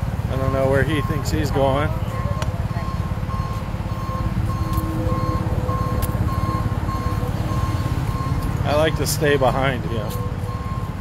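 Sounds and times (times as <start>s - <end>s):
truck reversing alarm beeping: 0.0s - 11.0s.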